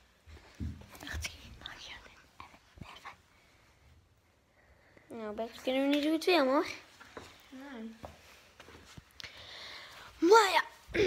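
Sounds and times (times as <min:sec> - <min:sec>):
person whispering: 0:01.0 - 0:03.2.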